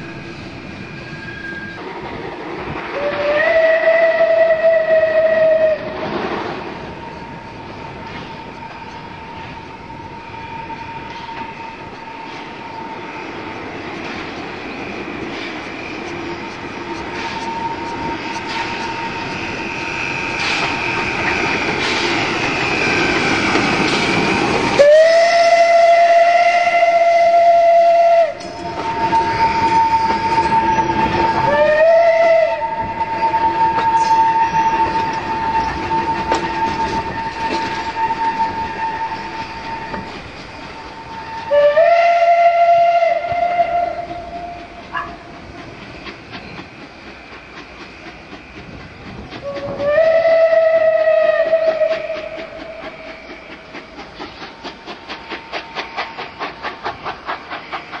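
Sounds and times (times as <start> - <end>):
train running on track: 0.0 - 58.0
steam locomotive whistle: 2.9 - 6.0, 16.8 - 19.6, 24.6 - 45.2, 49.4 - 53.9.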